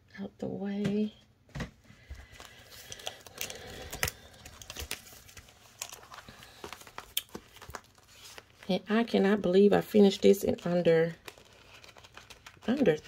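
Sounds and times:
plastic sleeves crinkling: 2.1s - 13.0s.

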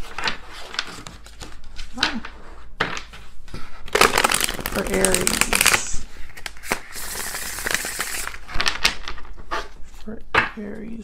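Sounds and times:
cards shuffling: 3.9s - 9.3s.

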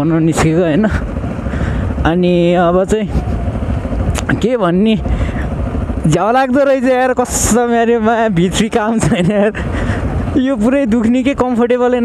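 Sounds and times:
man talking: 0.0s - 1.1s, 2.0s - 3.3s, 4.2s - 5.4s, 6.0s - 9.7s, 10.3s - 12.0s
motorcycle engine running: 0.0s - 12.0s
wind rumble on microphone: 0.0s - 12.0s.

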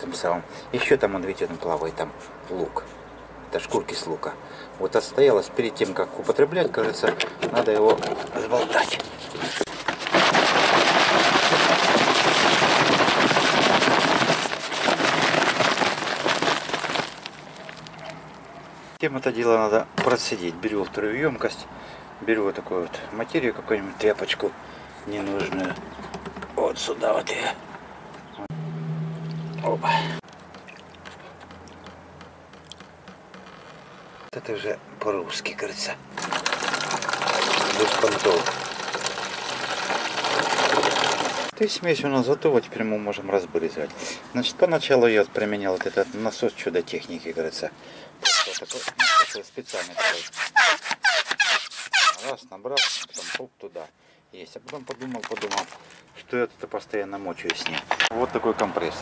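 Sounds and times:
liquid sloshing in shaken plastic bottle: 8.0s - 18.1s, 36.2s - 41.5s.

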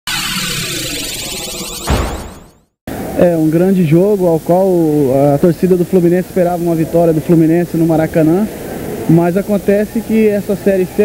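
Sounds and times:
deep electronic hit: 0.1s - 3.0s.

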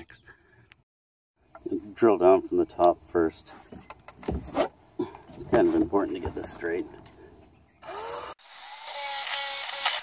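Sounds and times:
cordless drill boring into wood: 7.8s - 10.0s.

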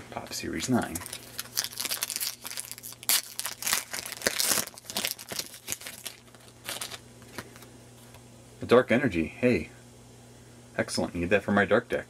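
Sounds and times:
foil wrapper tearing and crinkling: 0.8s - 7.6s.

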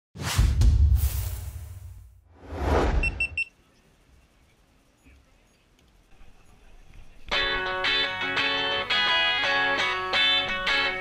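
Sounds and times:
whoosh: 0.2s - 3.2s
quick high beeps: 2.9s - 3.5s.

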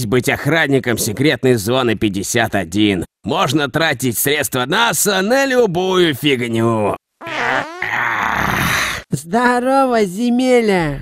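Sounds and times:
cartoon fart sound effect: 7.2s - 8.8s.

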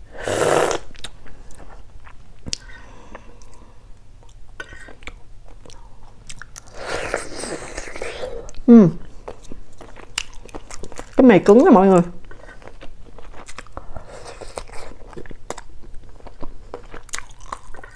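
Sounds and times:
slurping broth: 0.2s - 0.9s
person humming: 8.7s - 9.0s.

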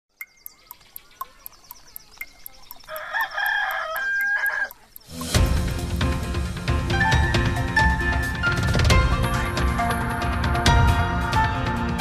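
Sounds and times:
faint birdsong: 0.1s - 5.6s
fast even ticking: 0.1s - 6.4s
rooster crowing: 2.8s - 4.8s.

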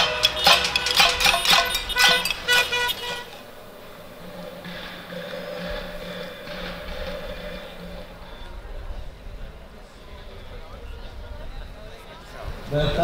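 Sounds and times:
metal pots and pans banging: 0.0s - 3.5s
vehicle horn held: 0.0s - 3.5s.

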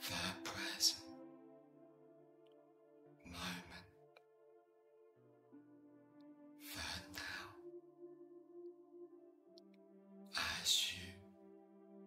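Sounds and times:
ambient music with held tones: 0.0s - 12.0s.

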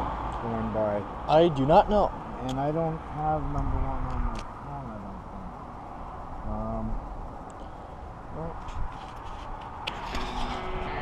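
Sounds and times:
street traffic rumble: 0.0s - 11.0s
person's voice: 0.4s - 5.5s, 6.4s - 7.0s.

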